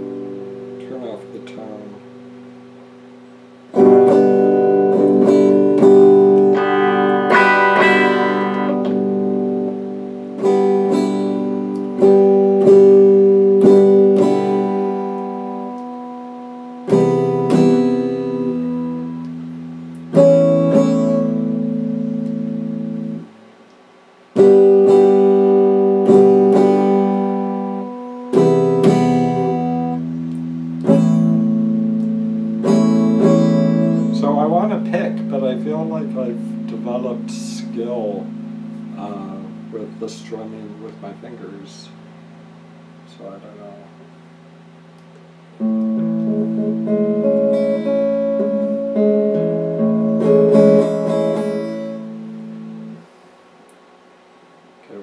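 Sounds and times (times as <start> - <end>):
electric guitar chords: 0.0 - 55.0.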